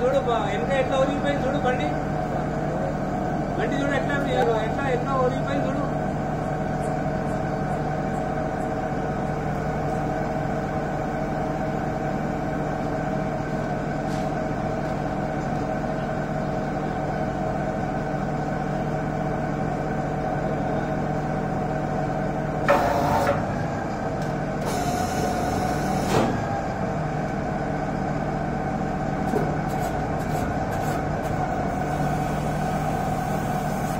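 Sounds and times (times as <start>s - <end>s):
drilling rig mechanical drone: 0.0s - 33.9s.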